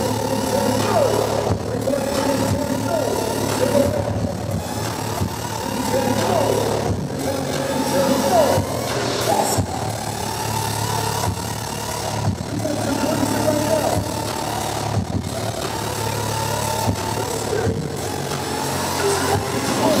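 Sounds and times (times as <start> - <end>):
crowd voices: 0.0 - 20.0
loud electronic dance music: 0.0 - 20.0.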